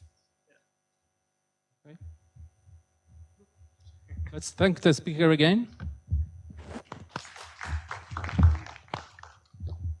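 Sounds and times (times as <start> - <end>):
dull low thumps: 2.0 - 4.8, 5.8 - 6.6, 9.6 - 10.0
audience applauding: 6.8 - 9.6.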